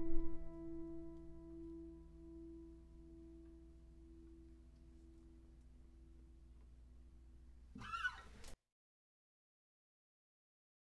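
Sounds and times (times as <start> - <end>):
acoustic guitar chord: 0.0 - 4.6.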